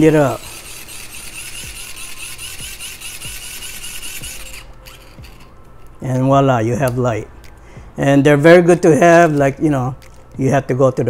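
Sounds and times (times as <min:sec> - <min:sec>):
geared whir of crank generator: 0:00.0 - 0:05.6.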